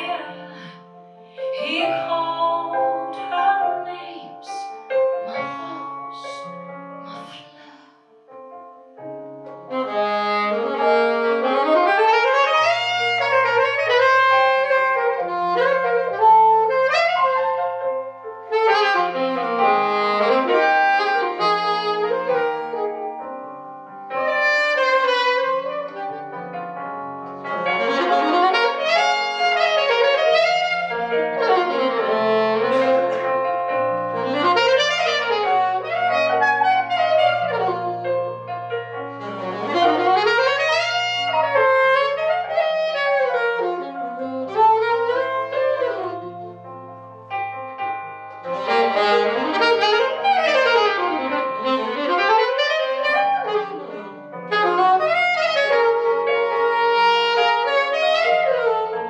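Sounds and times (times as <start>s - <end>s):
piano accompaniment: 0.0s - 59.0s
saxophone solo: 3.5s - 7.8s, 9.0s - 59.0s
saxophonist breathing: 7.1s - 8.2s.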